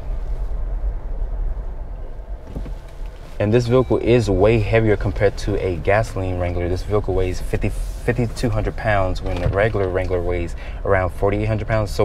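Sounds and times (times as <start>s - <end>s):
car driving heard from cabin: 0.0s - 12.0s.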